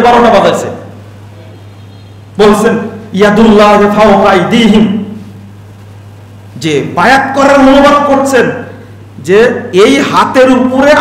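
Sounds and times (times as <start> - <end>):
man speaking: 0.0 - 0.9, 2.4 - 5.2, 6.6 - 11.0
steady low hum: 0.0 - 11.0.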